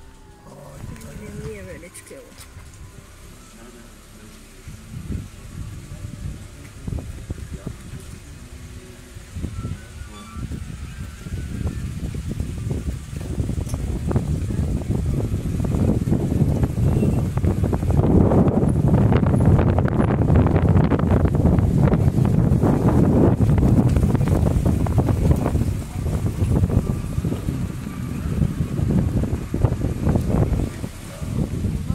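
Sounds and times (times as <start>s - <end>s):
wind buffeting microphone: 0.0s - 31.9s.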